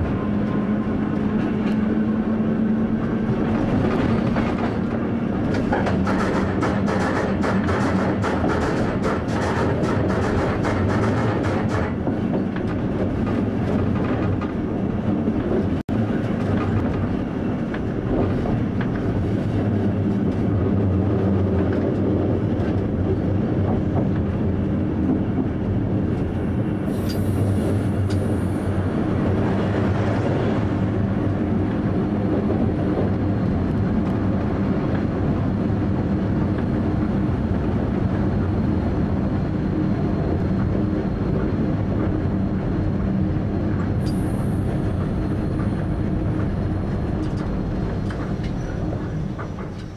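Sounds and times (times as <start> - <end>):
rail clatter over joints: 0.0 - 38.4, 40.2 - 49.9
train running hum: 0.0 - 49.9
brief high-pitched hiss: 26.9 - 27.6.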